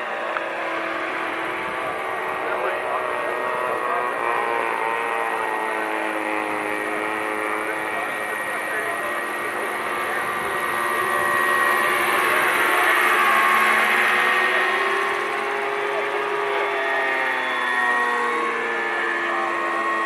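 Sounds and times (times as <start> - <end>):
model helicopter droning whine: 0.0 - 20.0.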